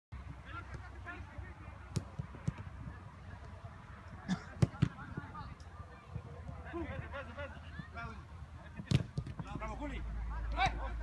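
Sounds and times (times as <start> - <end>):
distant players shouting: 6.1 - 11.0.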